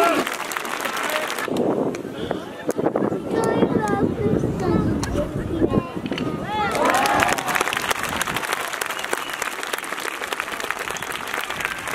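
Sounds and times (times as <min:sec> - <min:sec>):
audience applauding: 0:00.0 - 0:01.5, 0:06.7 - 0:11.9.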